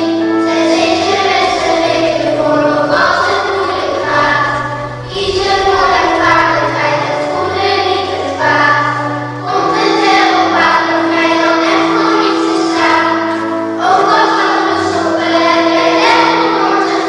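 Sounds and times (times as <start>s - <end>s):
held bass notes: 0.0s - 16.7s
choir singing: 0.0s - 17.0s.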